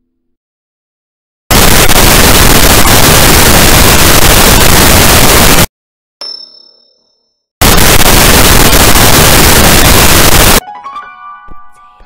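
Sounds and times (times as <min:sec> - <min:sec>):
loud harsh noise: 0:01.5 - 0:05.7, 0:07.6 - 0:10.6
metallic clang ringing: 0:06.2 - 0:07.2.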